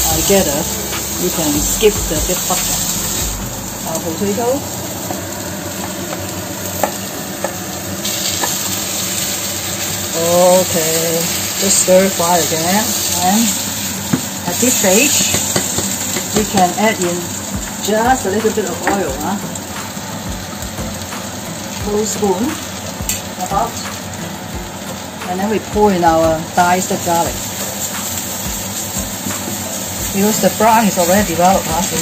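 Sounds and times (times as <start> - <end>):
food sizzling in frying pan: 0.0 - 32.0
spatula knocking on pan: 15.2 - 16.8.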